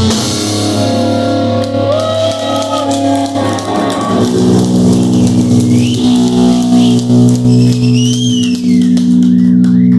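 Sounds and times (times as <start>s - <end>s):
electric guitar and bass chord: 0.0s - 9.9s
high gliding whine: 3.1s - 9.9s.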